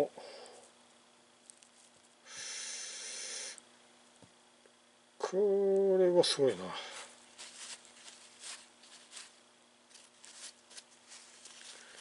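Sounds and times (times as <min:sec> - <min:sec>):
short airy hiss: 0:02.2 - 0:03.6.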